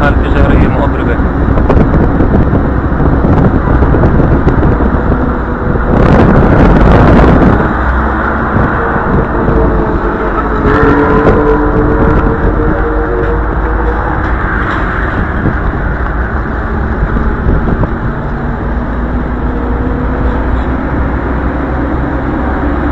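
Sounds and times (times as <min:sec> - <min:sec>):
vehicle engine running: 0:00.0 - 0:22.9.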